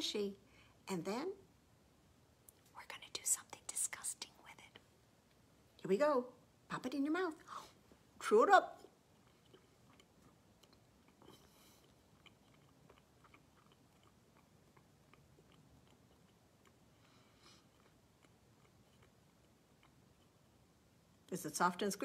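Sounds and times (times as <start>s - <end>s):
soft hissy breaths: 0.4s - 0.9s, 2.4s - 5.7s, 7.4s - 8.2s, 9.1s - 12.2s, 16.2s - 21.3s
mouth clicks from chewing: 9.2s - 16.8s.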